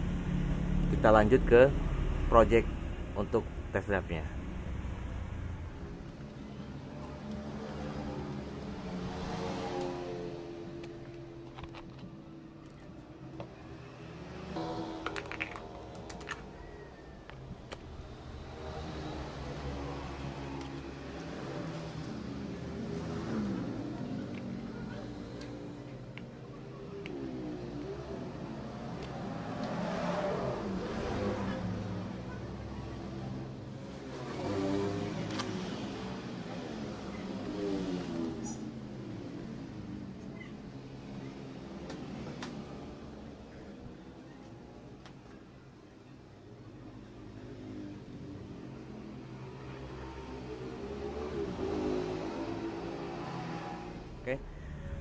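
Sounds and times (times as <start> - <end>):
two-stroke motorcycle engine revving: 5.2 - 11.1, 13.8 - 16.6, 17.9 - 26.0, 26.7 - 40.1, 47.6 - 54.5.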